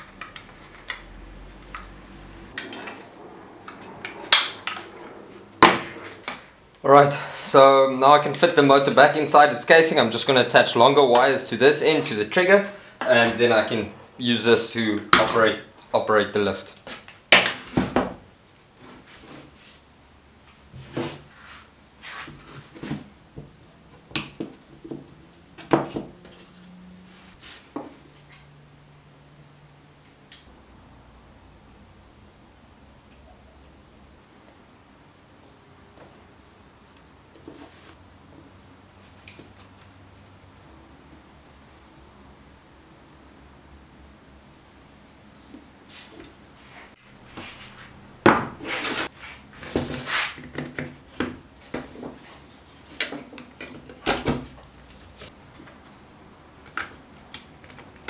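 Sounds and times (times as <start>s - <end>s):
hard parts scraping on board: 46.8s - 50.8s.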